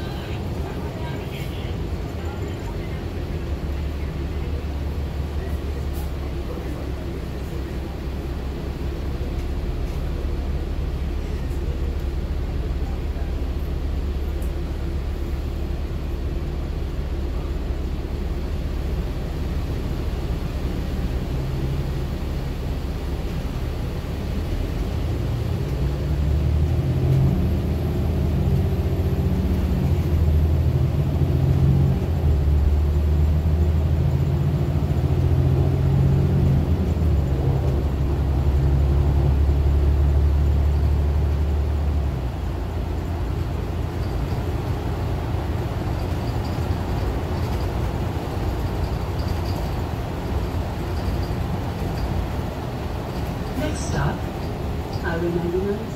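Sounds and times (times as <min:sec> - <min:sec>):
bus engine accelerating: 0:00.0 - 0:55.9.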